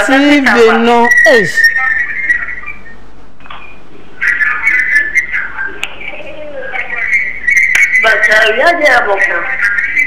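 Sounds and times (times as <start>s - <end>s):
high wavering whistling tone: 0.7s - 3.0s.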